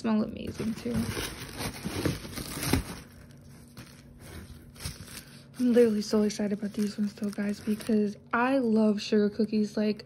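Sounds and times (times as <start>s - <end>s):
bubble wrap and paper crinkling: 0.0s - 9.7s.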